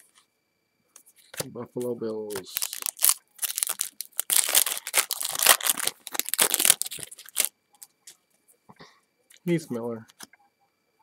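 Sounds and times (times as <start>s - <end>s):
foil wrapper crackling rustle: 2.3s - 7.5s.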